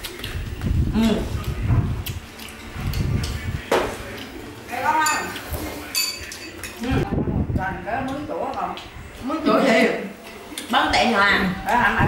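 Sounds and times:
metal spoon clinking ceramic bowl: 5.0 - 6.8.

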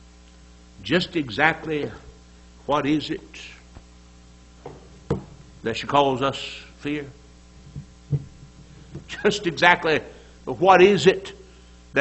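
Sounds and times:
sound system hum: 0.0 - 12.0
book set down on wood: 4.6 - 5.4.

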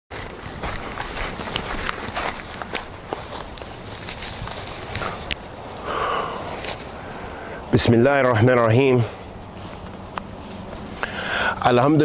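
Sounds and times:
footsteps through undergrowth: 0.1 - 11.8
twigs snapping underfoot: 0.2 - 7.4, 9.4 - 11.1
steady background hiss: 0.2 - 12.0.

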